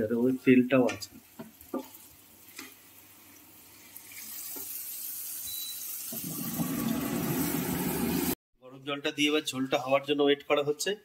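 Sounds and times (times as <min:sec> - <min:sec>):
water pouring into a pan: 0:03.2 - 0:08.4.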